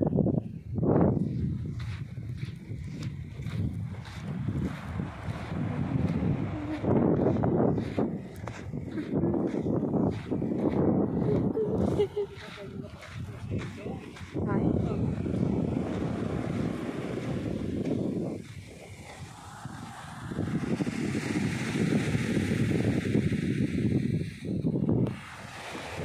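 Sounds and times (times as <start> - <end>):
wind buffeting microphone: 0.0 - 26.0
small waves breaking on sand: 1.8 - 26.0.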